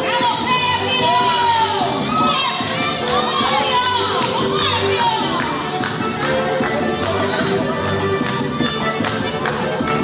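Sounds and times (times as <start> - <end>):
children shouting and cheering: 0.0 - 10.0
folk dance music: 0.0 - 10.0.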